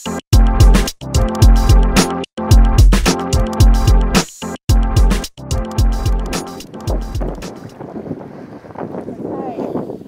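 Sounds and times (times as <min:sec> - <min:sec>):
background music with drum beat: 0:00.0 - 0:07.7
water sounds: 0:06.0 - 0:09.3
wind buffeting microphone: 0:06.0 - 0:10.0.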